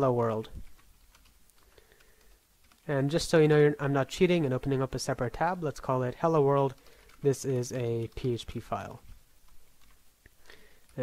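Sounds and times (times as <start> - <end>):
faint keyboard typing: 0.0 - 11.0.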